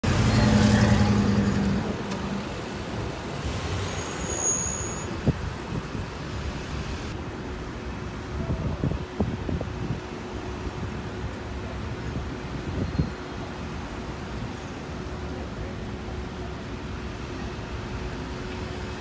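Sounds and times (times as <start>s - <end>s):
street traffic noise: 0.0s - 19.0s.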